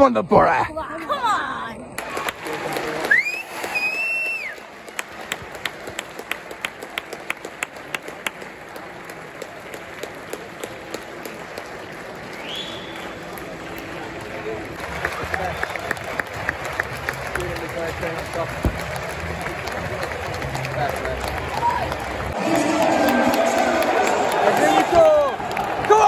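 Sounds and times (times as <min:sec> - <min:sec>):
rhythmic clapping: 0:02.0 - 0:26.0
crowd chatter: 0:04.4 - 0:26.0.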